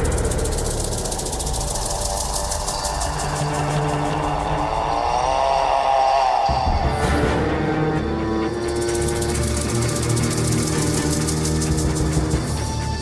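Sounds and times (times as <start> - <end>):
low rumble with rattling pulse: 0.0 - 5.3.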